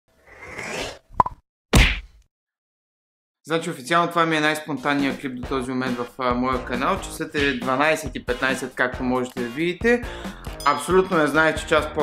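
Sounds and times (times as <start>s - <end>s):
quick pops: 1.2s - 2.2s.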